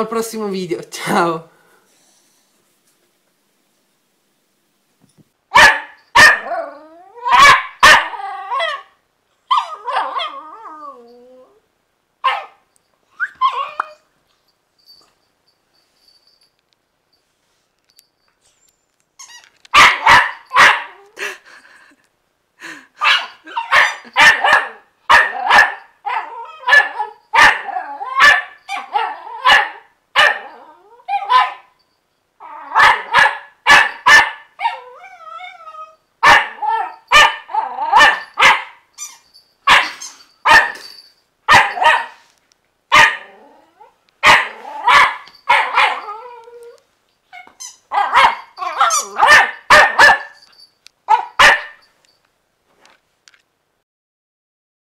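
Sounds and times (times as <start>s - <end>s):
puppy barking: 5.5s - 8.9s, 12.2s - 12.6s, 19.7s - 21.0s, 23.0s - 31.8s, 32.4s - 34.9s, 36.2s - 38.9s, 39.7s - 40.9s, 41.5s - 42.3s, 42.9s - 43.4s, 44.2s - 46.3s, 47.4s - 50.5s, 51.1s - 51.9s.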